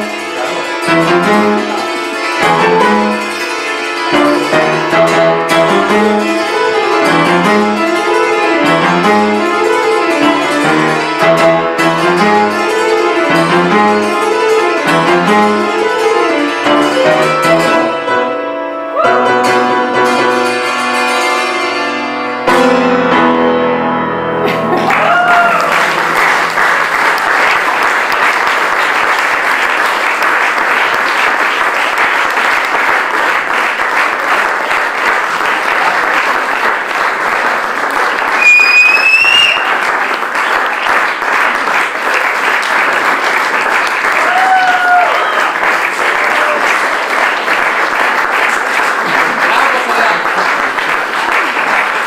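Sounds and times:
audience applauding: 0.0s - 17.8s, 24.4s - 52.0s
santur and piano piece: 0.0s - 26.8s
audience calls: 24.4s - 52.0s.

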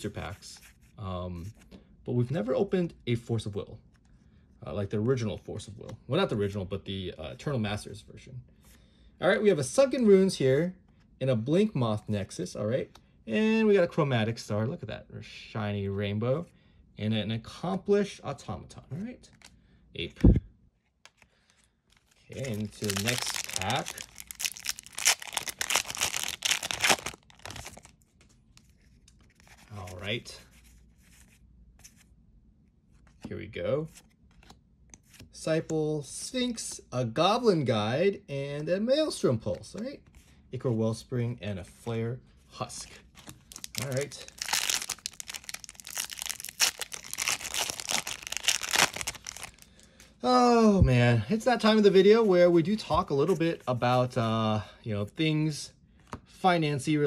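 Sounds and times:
foil wrapper tearing and crinkling: 22.0s - 27.9s, 43.4s - 49.7s.

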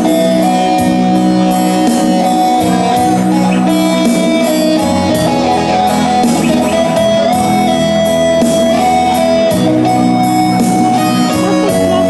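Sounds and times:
electronic keyboard melody: 0.0s - 12.0s
steady beat: 0.0s - 12.0s.

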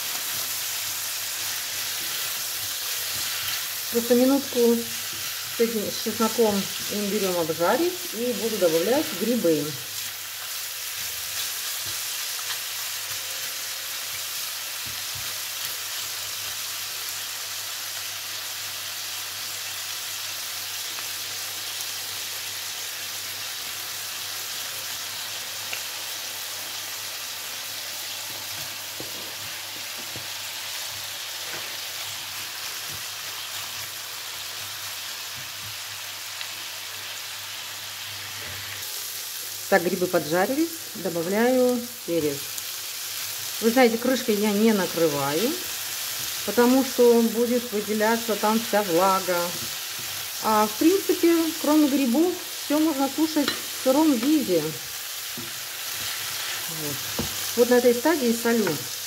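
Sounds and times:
chicken frying in a pan: 0.0s - 59.0s.

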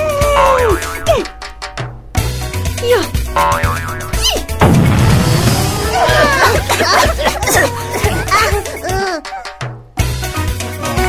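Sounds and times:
cartoon background music: 0.0s - 11.0s
wobbling up-and-down tone: 3.3s - 4.6s.

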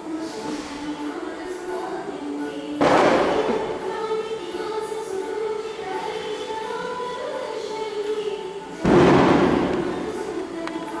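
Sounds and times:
devotional music: 0.0s - 11.0s
loud bang: 2.8s - 3.6s, 8.8s - 10.0s.

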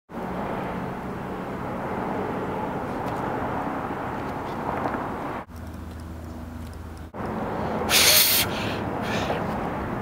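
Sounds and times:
distant traffic rumble: 0.1s - 10.0s.

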